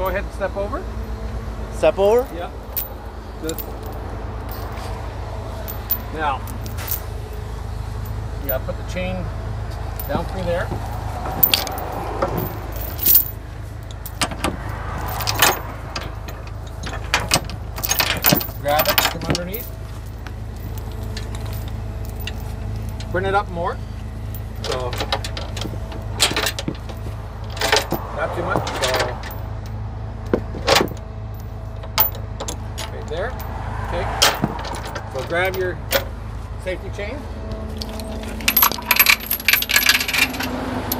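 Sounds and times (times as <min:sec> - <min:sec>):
low engine hum: 0:00.0 - 0:40.9
chain clinking and rattling: 0:02.2 - 0:05.0, 0:05.6 - 0:07.2, 0:08.0 - 0:08.6, 0:09.9 - 0:23.2, 0:24.2 - 0:33.6, 0:34.2 - 0:36.1, 0:37.8 - 0:40.9
sharp metal clanks: 0:11.3 - 0:19.8.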